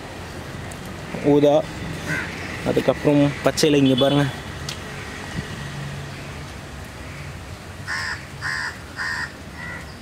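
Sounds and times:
crow cawing: 2.0s - 2.5s, 7.0s - 9.9s.

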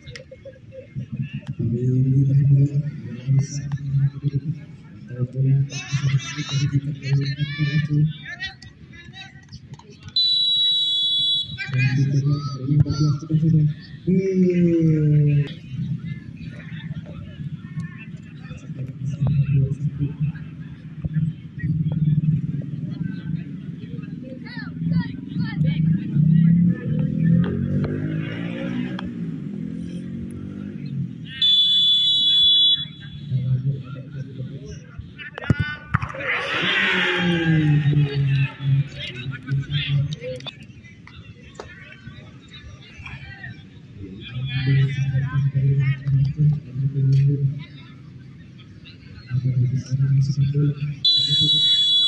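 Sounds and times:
crowd voices: 0.0s - 52.0s
spectators chatting: 0.0s - 52.0s
referee's whistle blast: 10.2s - 11.6s, 31.4s - 33.2s, 51.1s - 52.0s.

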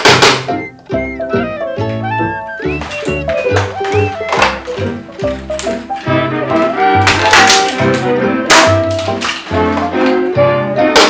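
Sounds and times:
plucked-string background music: 0.0s - 11.0s.

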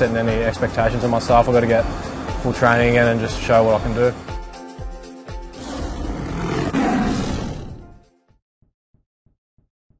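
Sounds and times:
tiger roar: 5.5s - 8.0s.

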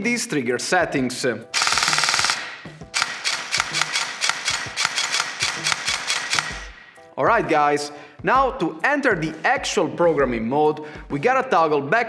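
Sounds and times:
airsoft gun dry-firing: 1.6s - 6.8s.

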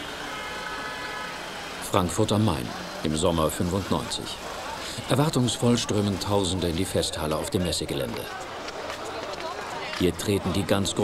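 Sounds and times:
crowd on foot: 0.0s - 11.0s
street sounds: 0.0s - 11.0s
man's voice: 5.0s - 8.3s, 10.0s - 11.0s.

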